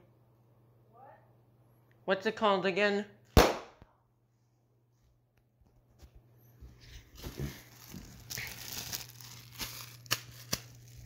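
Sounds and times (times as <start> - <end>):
sharp snaps: 3.4 - 3.8
plastic air bags crinkling: 7.2 - 11.0.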